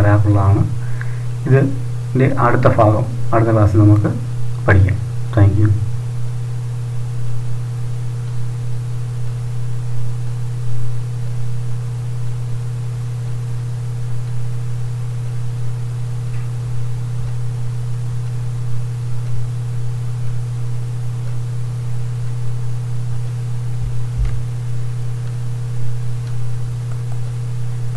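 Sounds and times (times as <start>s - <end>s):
constant hiss: 0.0s - 27.9s
low electrical hum: 0.0s - 27.9s.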